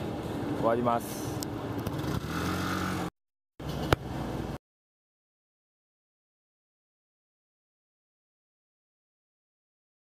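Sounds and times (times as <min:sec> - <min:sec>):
city street traffic: 0:00.0 - 0:04.6
motorcycle engine: 0:01.8 - 0:04.6.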